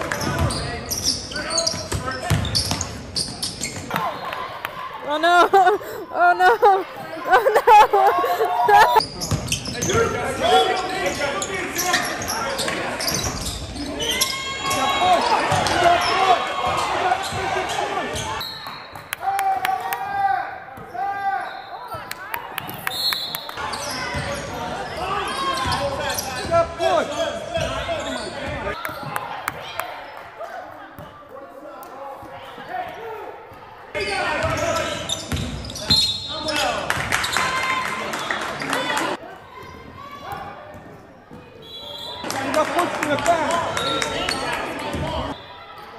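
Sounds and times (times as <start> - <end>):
echoing indistinct voices: 3.9 - 9.1.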